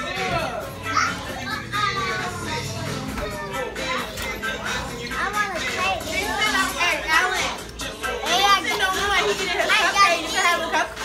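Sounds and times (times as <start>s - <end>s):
children chattering and calling out: 0.0s - 11.0s
faint music: 0.0s - 11.0s.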